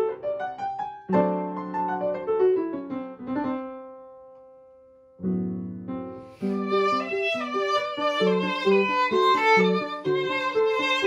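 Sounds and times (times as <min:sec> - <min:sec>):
piano notes and chord: 0:00.0 - 0:10.8.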